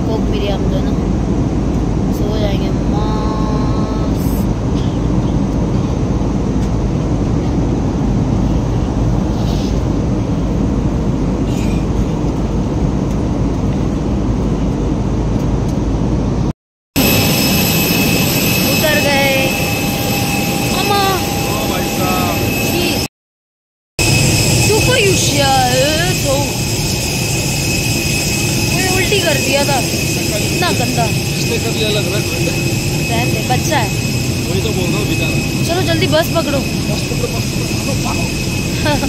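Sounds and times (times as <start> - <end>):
jet engines whining: 0.0 - 23.1, 24.0 - 39.0
airliner cabin rush: 4.0 - 23.1, 24.0 - 39.0.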